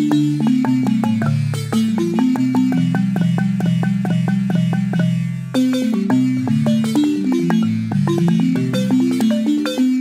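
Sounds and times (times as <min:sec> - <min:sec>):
wooden xylophone played with mallets: 0:00.0 - 0:10.0.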